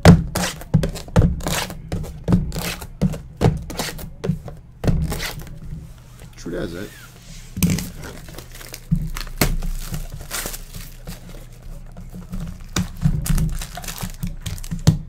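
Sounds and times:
plastic wrap crinkling and tearing: 7.6 - 15.0
boxes knocking: 12.0 - 15.0.

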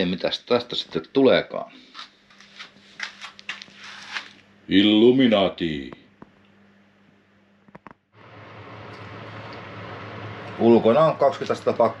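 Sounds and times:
electric fan heater running: 0.0 - 12.0.

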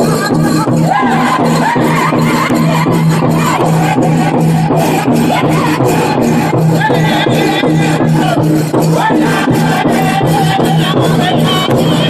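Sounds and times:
large drum beating fast: 0.0 - 12.0
men singing in unison: 0.8 - 12.0.

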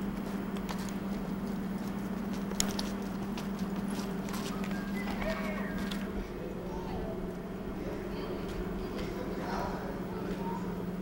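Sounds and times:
footsteps on concrete: 0.0 - 6.1
steady low hum: 0.0 - 11.0.

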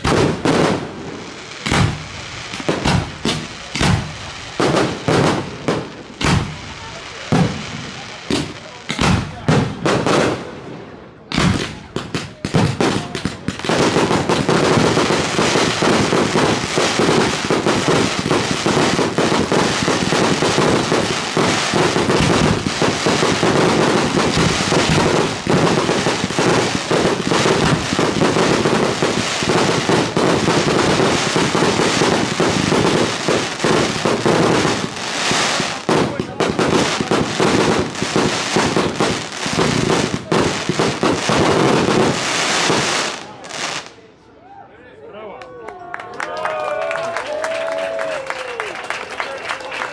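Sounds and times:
fireworks bursting and crackling: 0.0 - 44.0.

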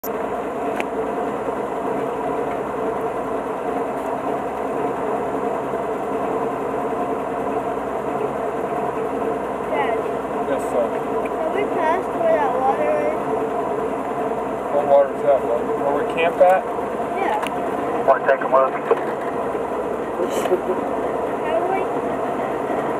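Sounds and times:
vehicle engine running at low speed: 0.0 - 22.9
people talking: 9.7 - 13.2, 14.7 - 16.6, 17.2 - 19.0, 20.2 - 20.8, 21.4 - 21.9.

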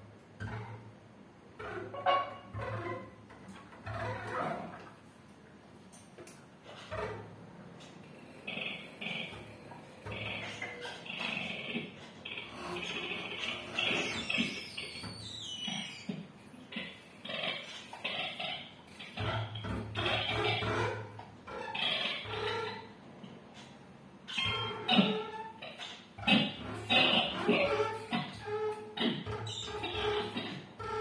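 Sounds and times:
bowed double bass scraping: 26.2 - 31.0.

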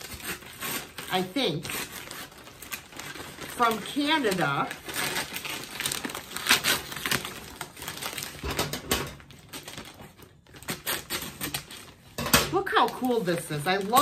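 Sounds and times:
paper packaging crinkling: 0.0 - 14.0.

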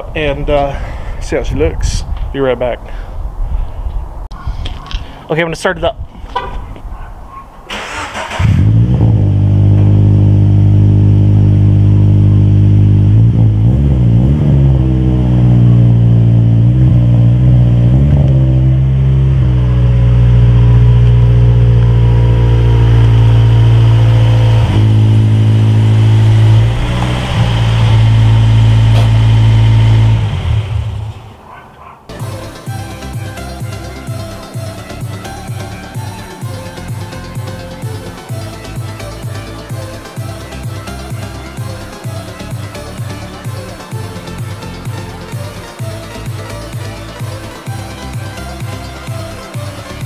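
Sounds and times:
engine starter cranking: 7.7 - 8.9
car engine idling: 7.7 - 50.0.

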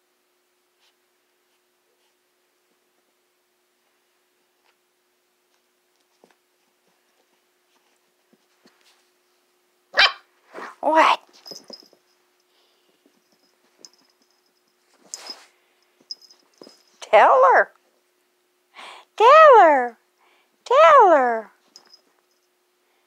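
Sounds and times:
puppy barking: 9.9 - 10.3.

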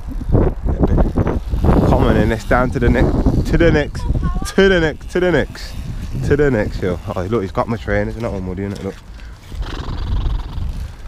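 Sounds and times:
electric dirt bike riding past: 0.1 - 8.1, 9.4 - 11.0.

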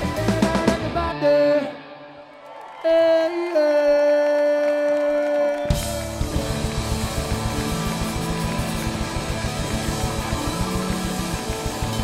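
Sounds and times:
rock band with drums and guitar: 0.0 - 2.6, 5.6 - 12.0.

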